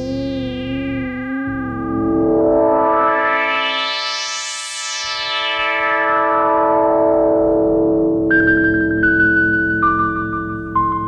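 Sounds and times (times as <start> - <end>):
high synth note: 0.0 - 8.6
synthesizer held chord: 0.0 - 9.8
low synth pulsing: 0.0 - 9.9.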